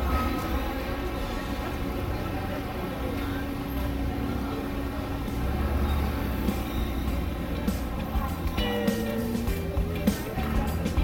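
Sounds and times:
machinery hum and rumble: 0:00.0 - 0:11.0.

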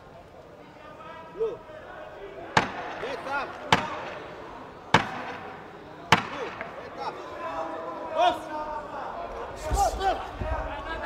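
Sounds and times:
people shouting: 0:05.0 - 0:08.6.

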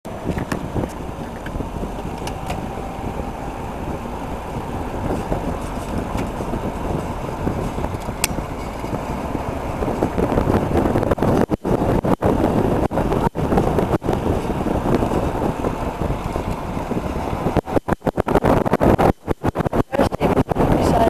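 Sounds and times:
wind and road noise: 0:00.0 - 0:21.0.

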